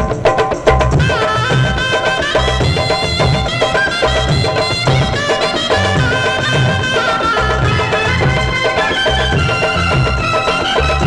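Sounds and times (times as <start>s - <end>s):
held instrumental melody: 0.0s - 11.0s.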